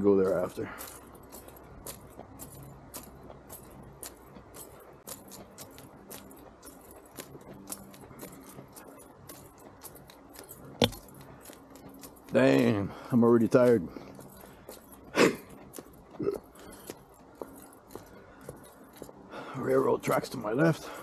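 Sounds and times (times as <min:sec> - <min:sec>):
footsteps on paved path: 0:00.0 - 0:21.0
small metal items jingling: 0:00.0 - 0:21.0.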